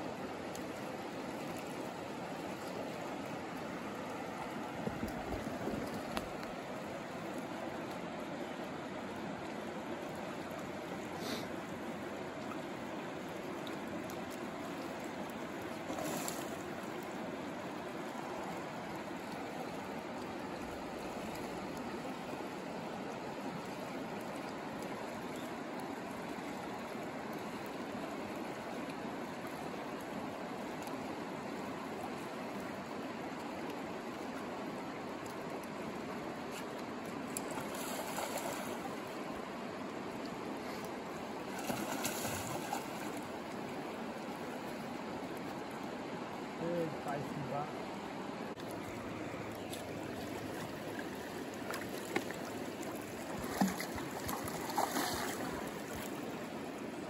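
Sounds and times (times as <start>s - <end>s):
river water rushing over riffle: 0.0s - 57.0s.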